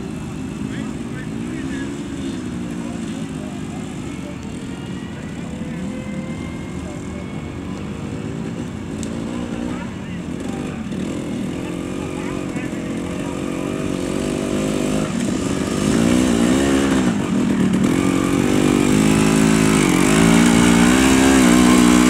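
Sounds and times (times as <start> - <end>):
motorcycle engines revving: 0.0 - 22.0.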